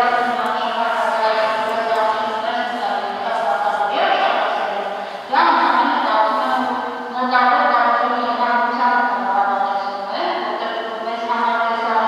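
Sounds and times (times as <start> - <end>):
woman speaking loudly: 0.0 - 12.0.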